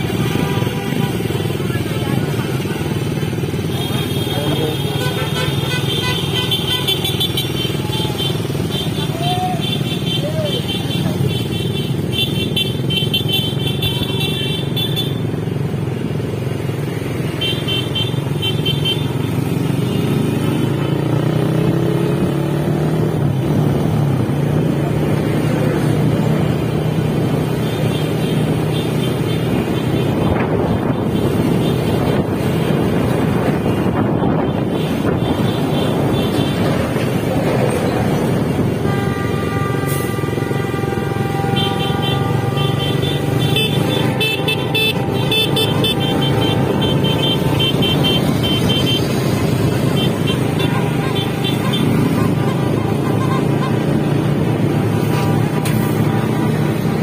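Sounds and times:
horns beeping short toots: 38.8 - 49.1.

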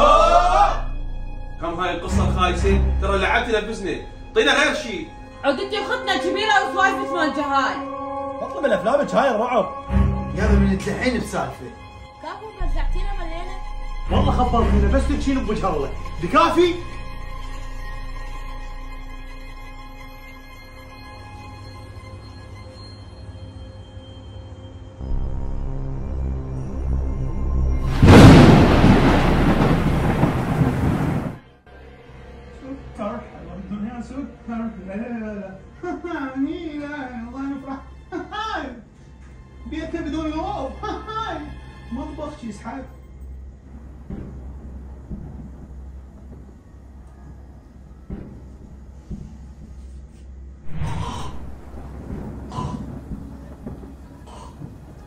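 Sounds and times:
thunderclap rumbling: 27.8 - 31.5, 43.7 - 49.6, 50.7 - 55.0
man gasping: 52.5 - 52.9.

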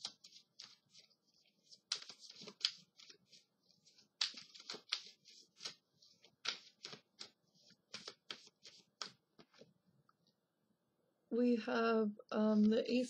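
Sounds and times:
cards being shuffled: 0.0 - 9.7.

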